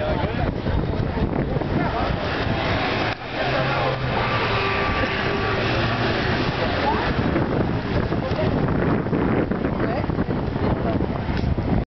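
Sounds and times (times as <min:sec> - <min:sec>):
voices: 0:00.0 - 0:11.4
street noise: 0:00.0 - 0:11.8.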